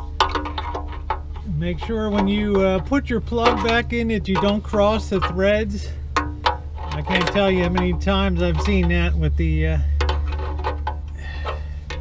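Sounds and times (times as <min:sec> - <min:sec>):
steady low hum: 0:00.0 - 0:12.0
light metal clicks and taps: 0:00.1 - 0:09.1, 0:09.9 - 0:12.0.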